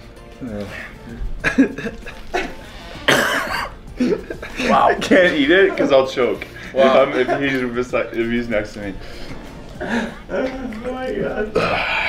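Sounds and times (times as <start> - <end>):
person coughing: 1.4 - 4.8.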